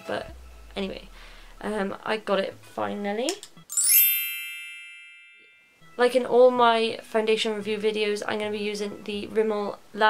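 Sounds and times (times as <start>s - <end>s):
bell-like chime: 3.7s - 6.2s.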